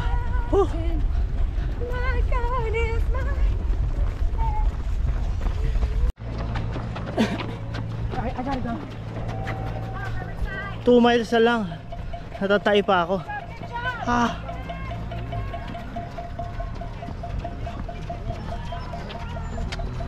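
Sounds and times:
wind rumbling on microphone: 0:00.0 - 0:06.1.

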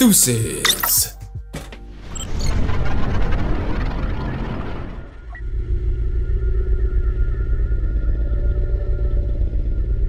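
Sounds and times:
loud low drone: 0:02.5 - 0:10.0.

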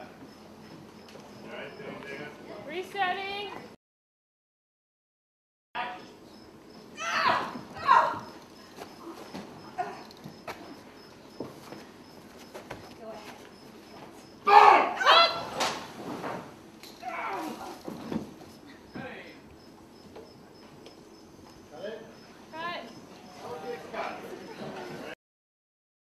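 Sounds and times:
women shrieking: 0:07.0 - 0:08.4, 0:14.5 - 0:15.5.

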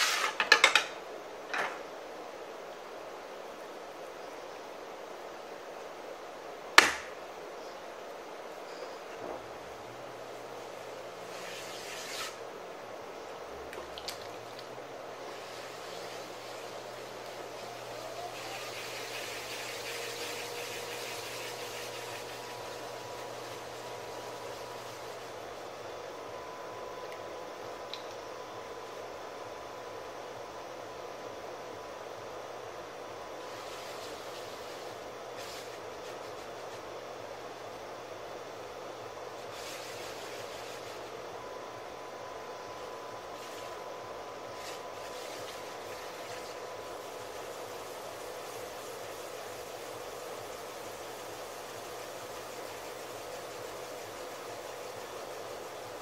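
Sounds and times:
potter's wheel motor hum: 0:02.6 - 0:56.0
wet hands rubbing clay: 0:33.5 - 0:37.0, 0:39.4 - 0:41.2, 0:44.6 - 0:56.0.

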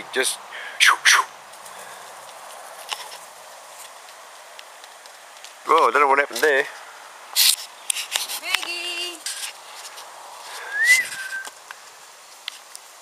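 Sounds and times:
whistle-like call: 0:00.8 - 0:01.3, 0:10.6 - 0:11.5.

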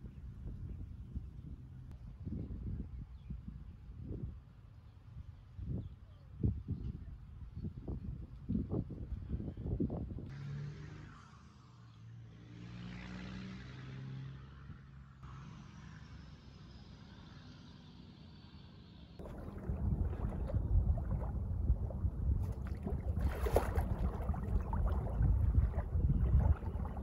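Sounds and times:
distant motorboat engine droning: 0:19.2 - 0:27.0
wind buffeting microphone: 0:19.2 - 0:27.0.

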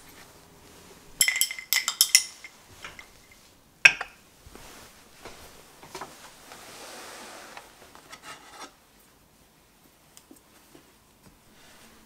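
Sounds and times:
hand rubbing cloth mat: 0:04.4 - 0:08.0.

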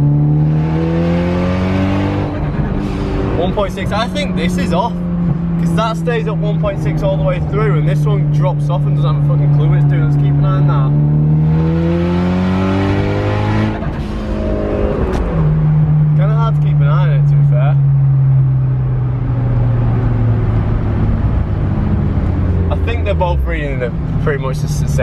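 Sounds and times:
car engine revving: 0:00.0 - 0:25.0.

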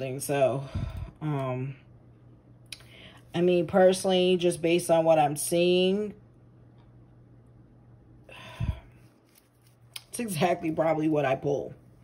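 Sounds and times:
woman speaking: 0:00.0 - 0:01.8, 0:03.3 - 0:06.2, 0:10.0 - 0:11.8.

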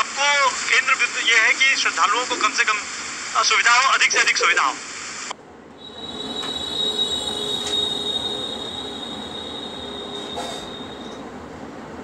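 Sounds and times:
train wheels squealing on rails: 0:05.8 - 0:11.4.

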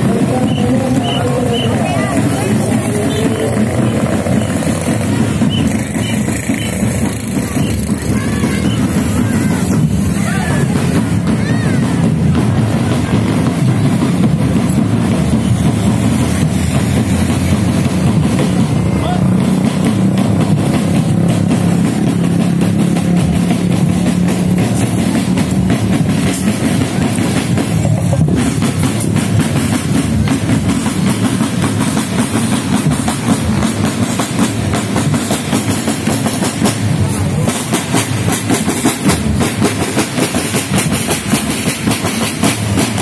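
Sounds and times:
bass drums: 0:00.0 - 0:43.0
snare drums: 0:00.0 - 0:43.0.

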